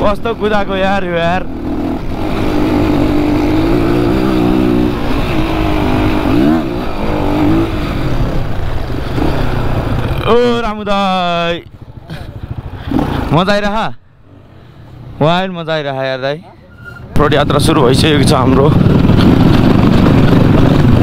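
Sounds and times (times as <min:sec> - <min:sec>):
dirt bike engine revving: 0:00.0 - 0:10.6, 0:12.1 - 0:13.7, 0:17.2 - 0:21.0.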